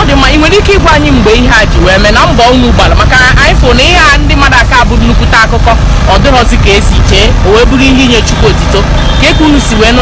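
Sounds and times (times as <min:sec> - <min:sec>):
loud steady low rumble: 0:00.0 - 0:10.0.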